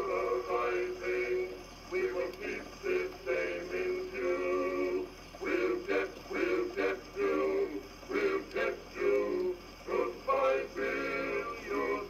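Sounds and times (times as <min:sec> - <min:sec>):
men singing on old phonograph: 0:00.0 - 0:12.0.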